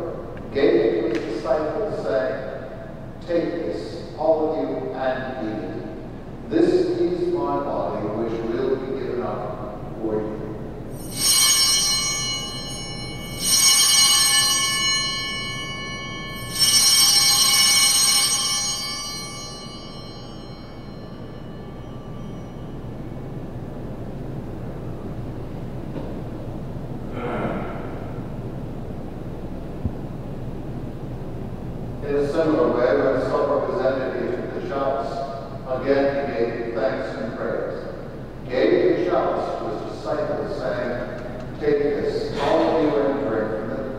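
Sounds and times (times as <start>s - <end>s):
altar bells ringing: 10.9s - 24.7s.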